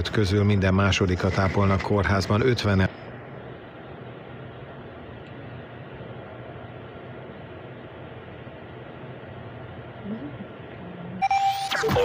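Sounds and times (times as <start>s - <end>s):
muffled radio broadcast: 0.0s - 3.1s
radio static hiss: 0.0s - 8.9s.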